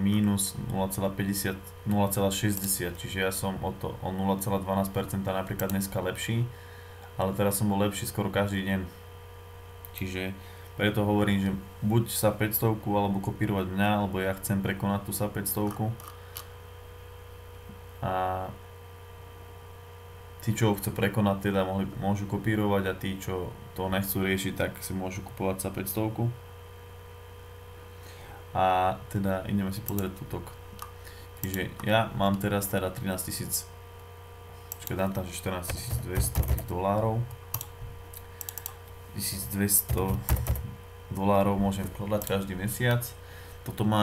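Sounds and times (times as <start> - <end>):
man speaking: 0.0 - 6.5, 10.0 - 16.0, 20.4 - 26.4, 28.5 - 30.6, 31.4 - 33.7, 34.8 - 37.3, 39.1 - 40.4, 41.1 - 44.0
low electrical hum: 0.0 - 44.0
keyboard typing: 34.7 - 36.7, 39.8 - 40.7.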